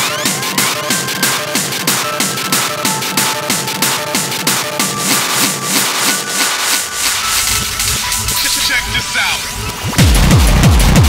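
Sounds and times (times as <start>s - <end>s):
hard electronic dance music: 0.0s - 11.0s
deep bass: 7.4s - 11.0s
pounding kick drum: 10.0s - 11.0s.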